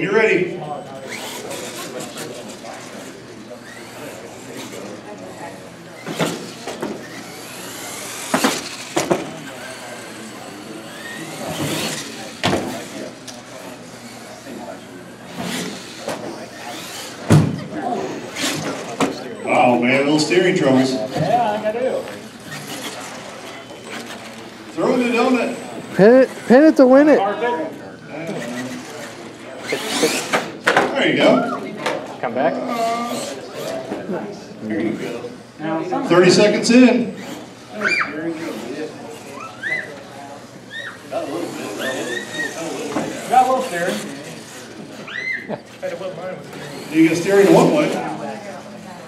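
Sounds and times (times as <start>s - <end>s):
people talking: 0.0s - 49.0s
voices in indoor hall: 0.0s - 49.0s
toy truck running on carpet: 0.9s - 17.3s, 18.0s - 19.5s, 20.8s - 30.6s, 32.7s - 33.9s, 38.3s - 48.6s
electric motor whining: 0.9s - 20.1s, 20.7s - 27.3s.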